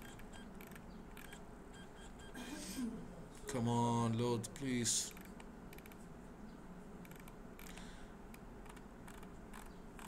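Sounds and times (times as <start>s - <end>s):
low steady hum: 0.0s - 10.0s
computer controls clicking: 5.1s - 6.0s, 7.0s - 10.0s.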